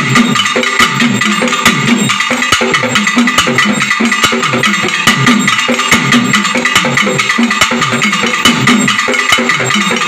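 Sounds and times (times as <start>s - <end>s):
folk drums beaten with sticks: 0.0s - 10.0s.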